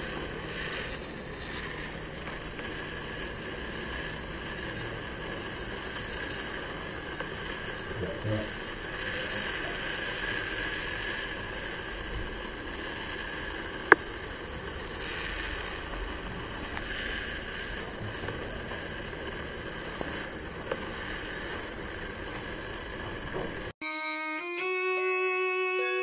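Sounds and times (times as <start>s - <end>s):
background hiss and hum: 0.0s - 23.8s.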